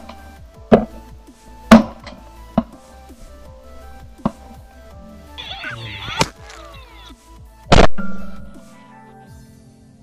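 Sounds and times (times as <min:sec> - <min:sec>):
music with percussive hits: 0:00.0 - 0:03.0, 0:04.1 - 0:04.7
shotgun blast: 0:07.7 - 0:08.2.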